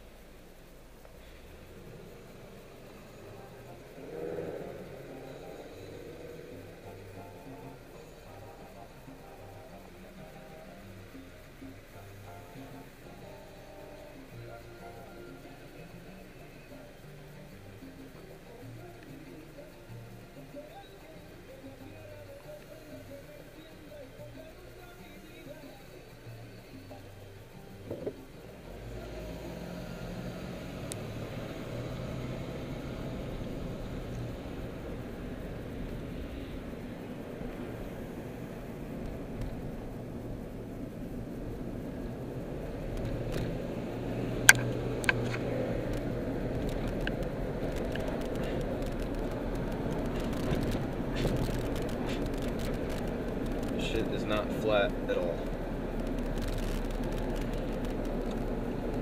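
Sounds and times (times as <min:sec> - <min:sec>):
car engine and tyre rumble: 0:00.0 - 0:24.8, 0:26.1 - 0:59.0
sharp clicks: 0:44.4 - 0:54.1.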